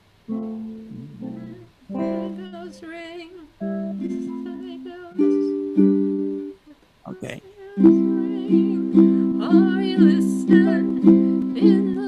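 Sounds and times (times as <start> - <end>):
ukulele chords strummed: 0.3 - 3.0, 3.6 - 6.6, 7.8 - 12.0.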